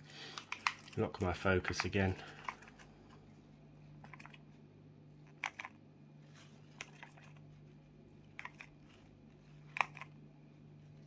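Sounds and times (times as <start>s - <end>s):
steady low hum: 0.0s - 11.0s
light clicks and taps: 0.3s - 3.2s.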